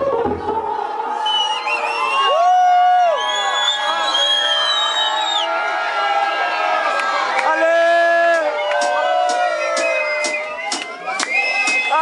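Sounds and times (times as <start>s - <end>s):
crowd cheering and whooping: 0.0s - 12.0s.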